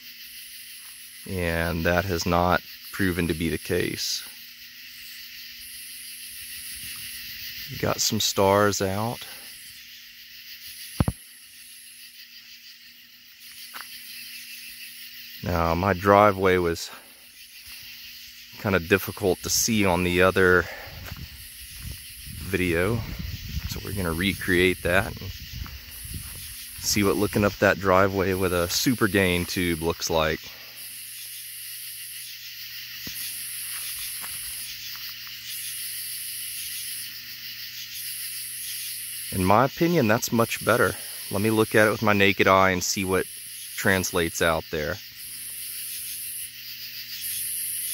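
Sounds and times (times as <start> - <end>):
steady high hiss: 0.0 - 47.9.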